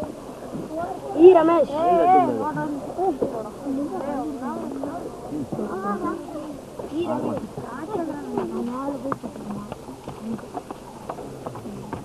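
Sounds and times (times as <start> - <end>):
faint voices: 0.0 - 12.0
footsteps scrambling over stony ground: 6.7 - 12.0.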